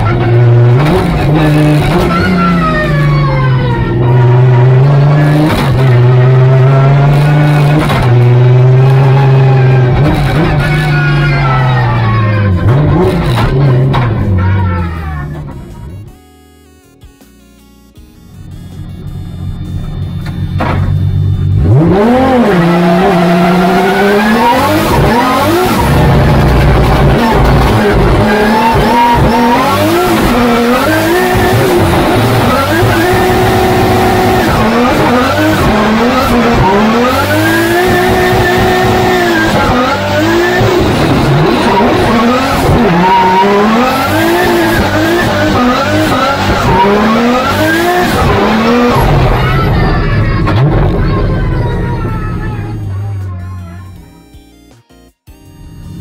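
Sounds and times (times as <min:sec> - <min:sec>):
car engine revving hard: 0:00.0 - 0:15.0, 0:19.6 - 0:52.6.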